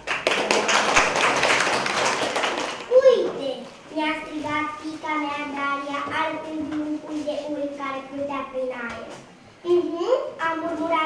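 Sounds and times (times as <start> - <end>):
audience clapping: 0.0 - 3.0.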